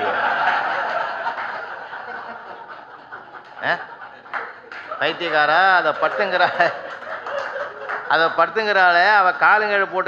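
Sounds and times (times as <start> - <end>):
audience laughing: 0.0 - 10.0.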